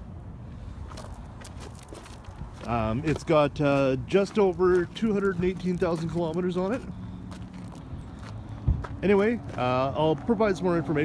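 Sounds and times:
wind rumble: 0.0s - 5.9s
footsteps on gravel: 0.8s - 10.7s.

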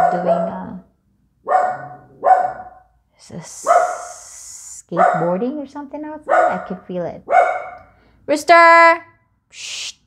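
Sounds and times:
dog barking: 0.0s - 0.8s, 1.4s - 2.9s, 3.6s - 4.1s, 4.9s - 5.4s, 6.3s - 7.9s.

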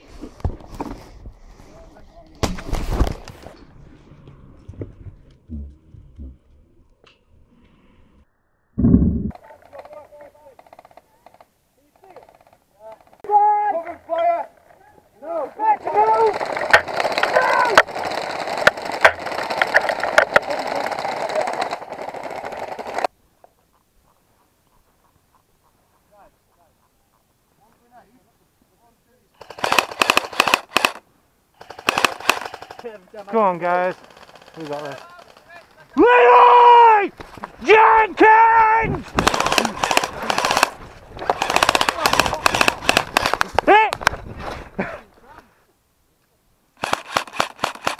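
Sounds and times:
faint shouting voices: 12.8s - 16.5s, 17.2s - 17.9s, 34.7s - 39.8s, 43.6s - 44.0s
man yelling: 13.2s - 14.5s, 17.3s - 17.8s, 35.9s - 39.0s, 43.6s - 44.0s
distant airsoft rifle fire: 16.3s - 23.1s, 29.4s - 31.0s, 31.6s - 33.0s, 34.0s - 35.5s, 39.1s - 43.6s, 46.8s - 47.9s.

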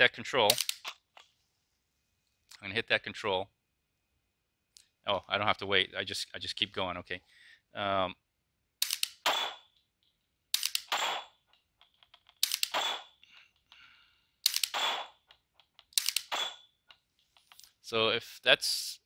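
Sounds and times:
trigger reset mechanical burst: 16.0s - 16.6s.

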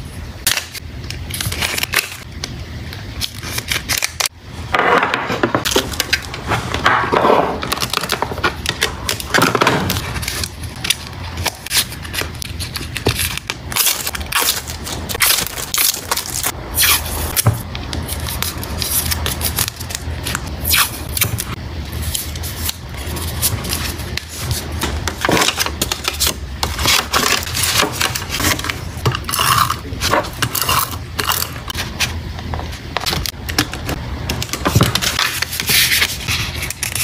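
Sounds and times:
plastic sleeves crinkling: 7.5s - 37.0s.

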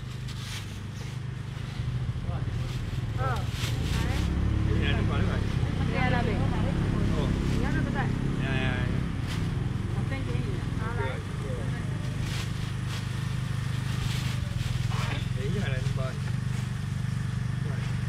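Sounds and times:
vehicle engine rumbling: 0.0s - 18.0s
nearby voices: 2.2s - 9.0s.

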